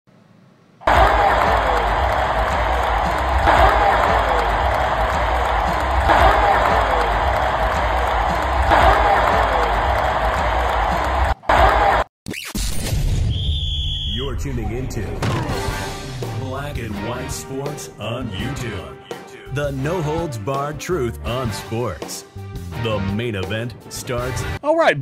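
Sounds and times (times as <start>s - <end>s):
stadium crowd noise: 0.8s - 12.1s
music over loudspeakers: 15.5s - 24.6s.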